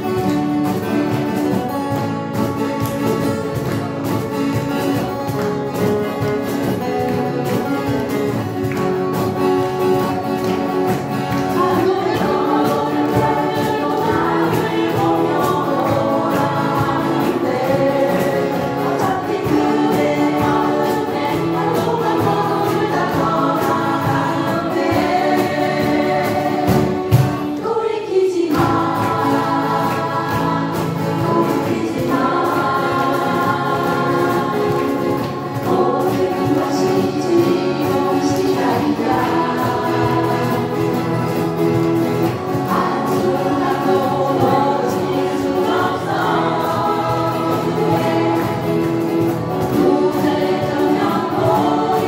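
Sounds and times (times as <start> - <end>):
acoustic guitars strumming: 0.0 - 52.0
women singing together: 10.0 - 52.0.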